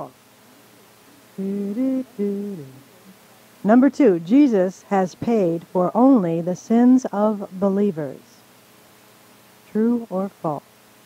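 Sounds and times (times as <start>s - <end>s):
person humming: 1.4s - 2.9s.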